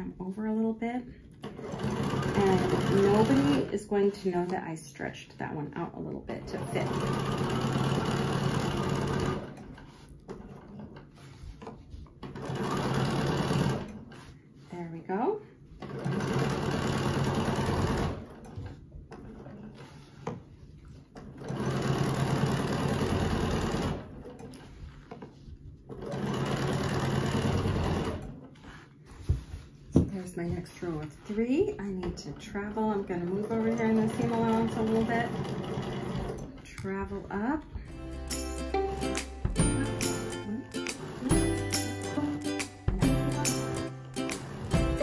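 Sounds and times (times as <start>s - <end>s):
sewing machine stitching: 1.4s - 4.2s, 6.3s - 11.2s, 12.2s - 14.3s, 15.8s - 20.1s, 21.2s - 24.8s, 25.9s - 28.8s, 31.1s - 37.1s.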